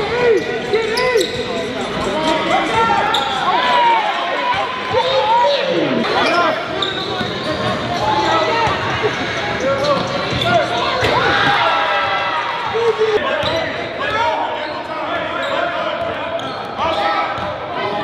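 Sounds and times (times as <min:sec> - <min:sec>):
players' voices: 0:00.0 - 0:18.0
sneaker squeaks on floor: 0:00.3 - 0:02.1, 0:06.1 - 0:11.2, 0:13.3 - 0:17.5.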